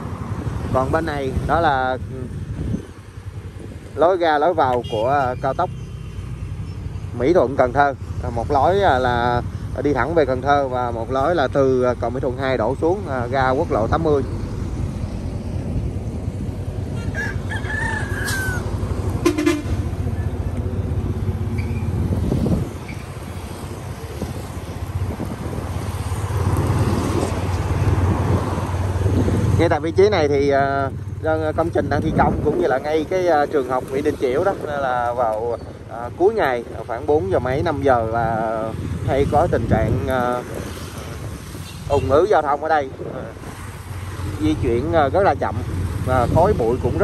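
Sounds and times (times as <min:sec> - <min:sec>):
low rumble of road traffic: 0:00.0 - 0:47.0
rooster crowing: 0:16.9 - 0:18.9.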